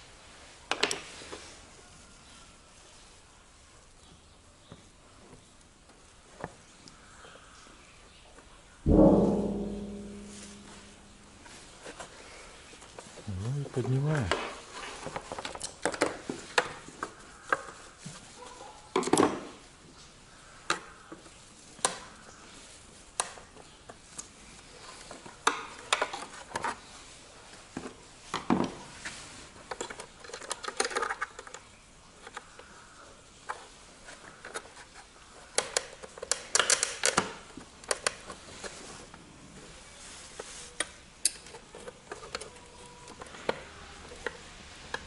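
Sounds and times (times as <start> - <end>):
loud ringing metal clank: 8.9 - 11.3.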